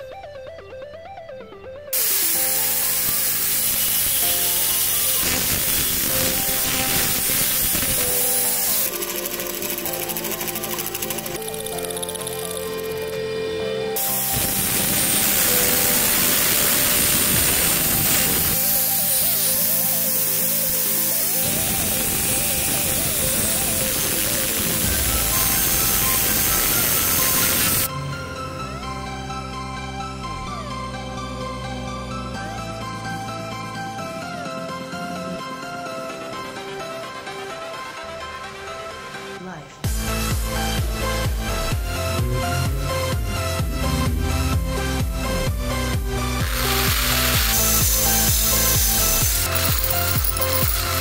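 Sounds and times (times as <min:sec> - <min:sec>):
angle grinder cutting steel: 0:02.0 - 0:13.3, 0:14.0 - 0:28.6, 0:46.2 - 0:51.0.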